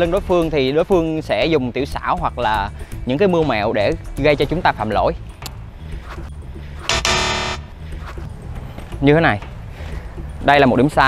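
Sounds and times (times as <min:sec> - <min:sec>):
background music: 0:00.0 - 0:11.0
harsh wrong answer buzzer: 0:06.9 - 0:07.8.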